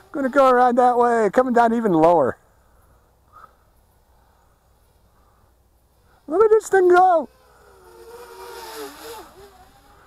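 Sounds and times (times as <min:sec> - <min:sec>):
drone propellers whining: 0:04.7 - 0:10.0.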